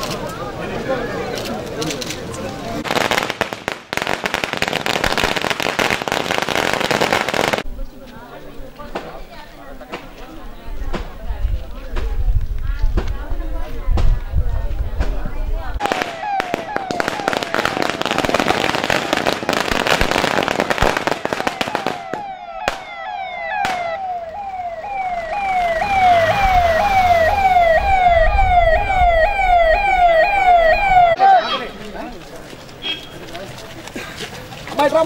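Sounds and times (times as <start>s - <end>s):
firecrackers crackling: 1.4s - 7.7s, 15.8s - 29.1s
sharp bangs: 15.8s - 31.2s
electronic siren sweeping: 21.4s - 31.2s.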